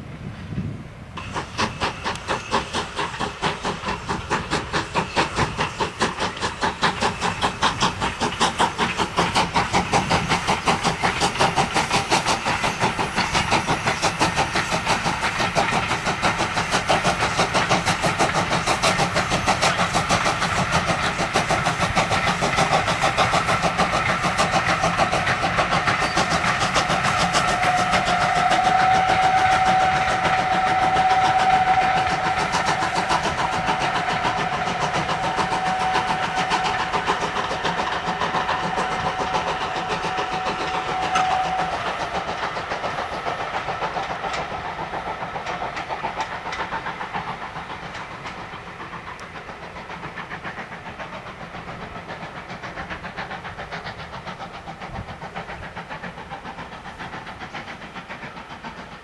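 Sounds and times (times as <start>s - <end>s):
steam locomotive exhaust beating: 0.0s - 59.0s
train coaches rolling by: 0.0s - 59.0s.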